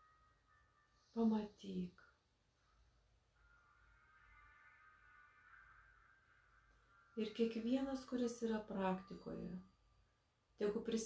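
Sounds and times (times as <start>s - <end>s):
faint high-pitched drone: 0.0s - 11.0s.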